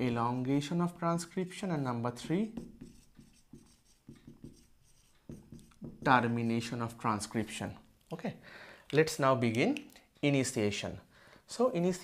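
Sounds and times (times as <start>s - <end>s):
marker writing on whiteboard: 2.1s - 7.6s.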